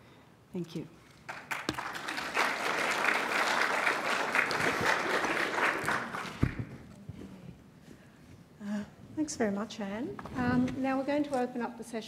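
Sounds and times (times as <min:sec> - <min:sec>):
audience applauding: 0:01.3 - 0:06.7.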